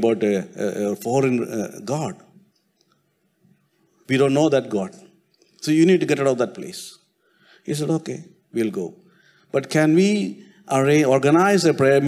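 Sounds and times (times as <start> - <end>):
man speaking: 0.0 - 2.4, 4.0 - 7.0, 7.6 - 12.0.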